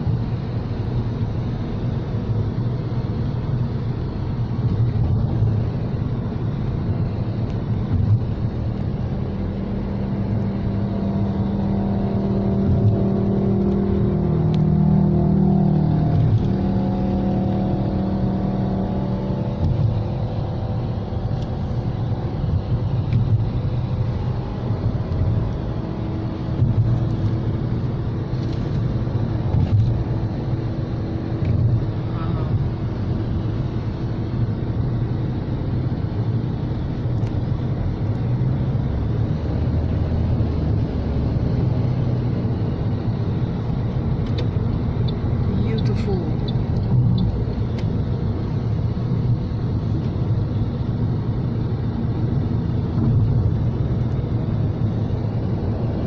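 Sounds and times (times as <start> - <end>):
car tyre and engine rumble: 0.0 - 56.0
pitched engine hum: 0.0 - 56.0.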